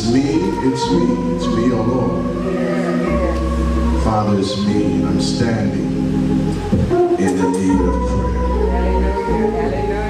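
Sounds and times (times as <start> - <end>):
man singing a hymn into microphone: 0.0 - 3.2, 3.9 - 6.1, 6.9 - 8.7.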